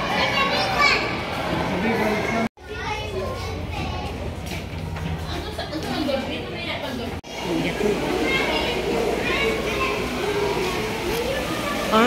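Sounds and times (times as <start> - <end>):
crowd chatter: 0.0 - 12.0
children calling: 7.2 - 12.0.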